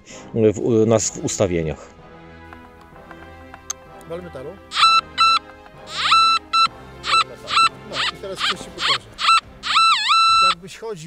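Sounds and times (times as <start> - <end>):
metal detector beeps: 4.7 - 10.6.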